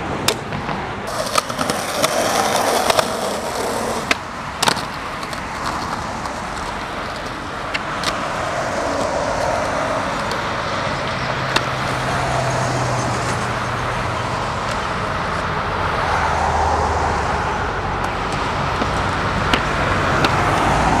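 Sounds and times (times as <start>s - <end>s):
cars passing: 0.0s - 21.0s
skateboard wheels rolling on pavement: 0.0s - 21.0s.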